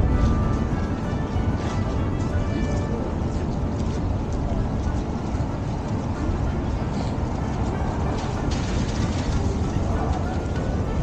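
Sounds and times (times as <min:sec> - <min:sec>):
faint background music: 0:00.0 - 0:11.0
low rumble of city ambience: 0:00.0 - 0:11.0.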